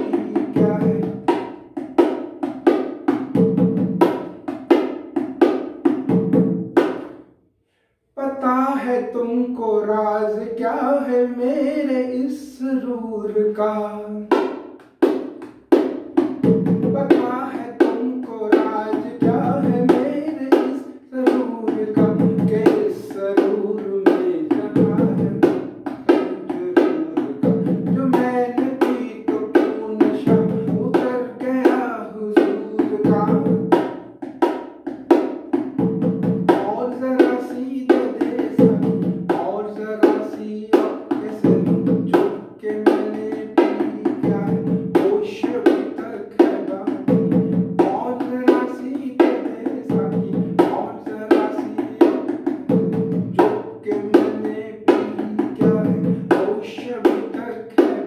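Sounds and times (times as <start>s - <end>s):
man singing: 0.0s - 1.9s, 8.2s - 14.6s, 16.2s - 35.1s, 36.0s - 58.0s
bongos played by hand: 0.0s - 7.4s, 14.2s - 58.0s.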